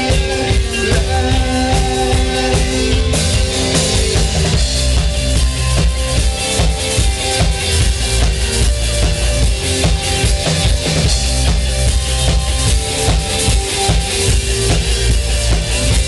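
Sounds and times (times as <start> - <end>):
drum kit beat: 0.0 - 16.0
electric guitar: 0.0 - 16.0.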